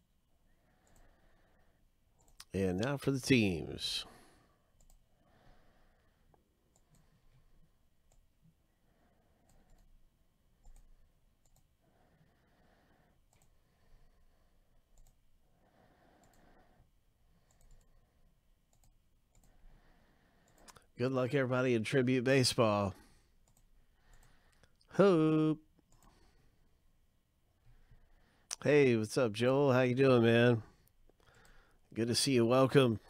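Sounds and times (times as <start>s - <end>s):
computer mouse clicks: 0.8s - 1.1s, 2.2s - 2.6s, 4.8s - 5.0s, 6.7s - 7.2s, 8.0s - 8.3s, 9.4s - 9.9s, 10.6s - 11.7s, 13.3s - 13.6s, 14.9s - 15.2s, 16.2s - 16.6s, 17.4s - 18.0s, 18.7s - 19.6s, 20.4s - 20.9s, 23.4s - 24.8s, 25.8s - 26.3s.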